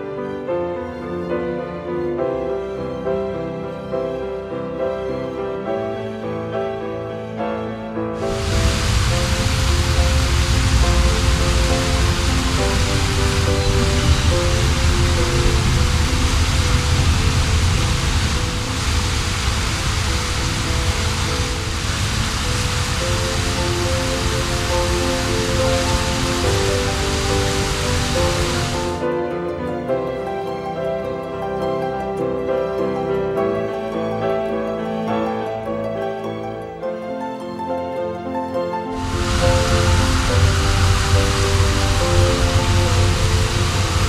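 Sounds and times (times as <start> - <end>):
rushing flowing water: 0.0 - 44.0
soft background music: 0.0 - 44.0.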